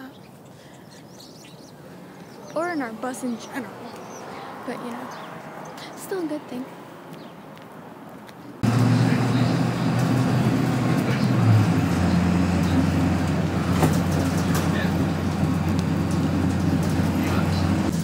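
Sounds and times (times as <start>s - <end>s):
road noise with rattles: 0.0s - 18.0s
bus engine drone: 1.0s - 18.0s.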